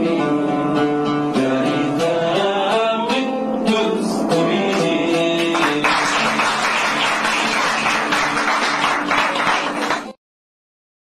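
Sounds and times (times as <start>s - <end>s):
live song with plucked strings: 0.0s - 10.2s
audience applause: 5.5s - 10.2s.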